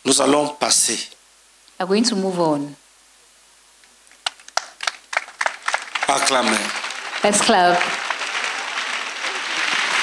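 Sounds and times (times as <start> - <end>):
crowd clapping: 4.2 - 10.0.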